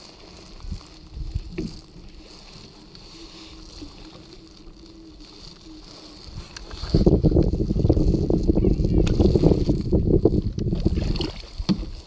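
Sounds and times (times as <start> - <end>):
small waves lapping against kayak hull: 0.0 - 12.0.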